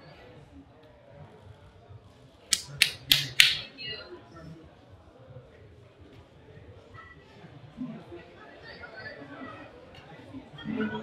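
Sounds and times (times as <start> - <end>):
sharp snaps: 2.5 - 3.7.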